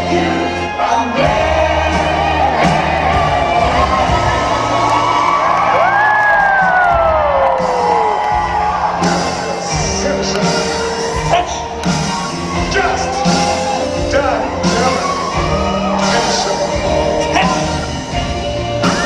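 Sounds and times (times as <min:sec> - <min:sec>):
rock and roll music: 0:00.0 - 0:19.0
audience cheering and whooping: 0:00.3 - 0:19.0.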